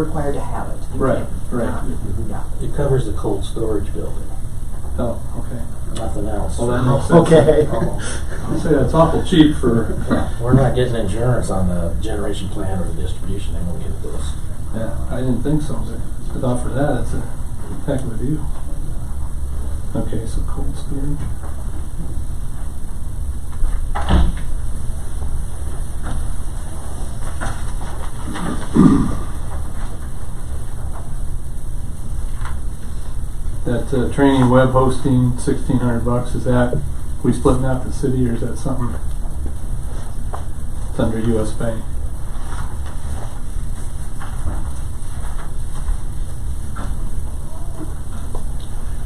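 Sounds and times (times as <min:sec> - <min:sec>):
low room hum: 0:00.0 - 0:49.0.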